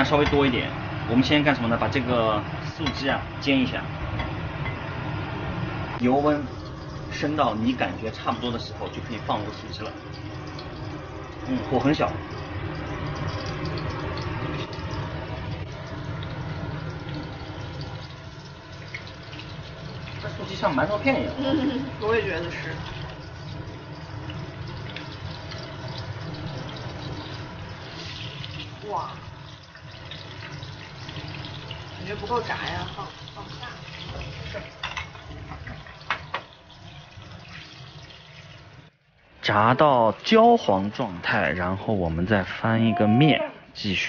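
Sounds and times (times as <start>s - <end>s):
tofu sizzling in hot oil: 0.0s - 39.0s.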